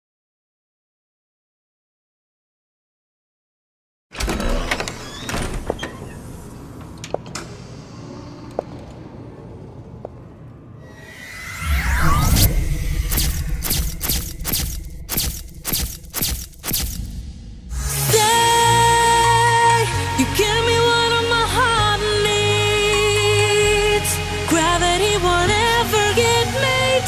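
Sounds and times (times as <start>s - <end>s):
rising whoosh: 10.9s - 18.2s
sharp hits: 11.0s - 18.3s
low rumble: 11.2s - 18.1s
scattered clicks: 13.1s - 17.1s.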